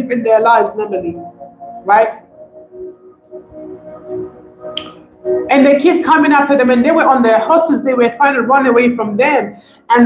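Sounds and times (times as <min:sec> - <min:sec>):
soft music with held tones: 0:00.0 - 0:10.0.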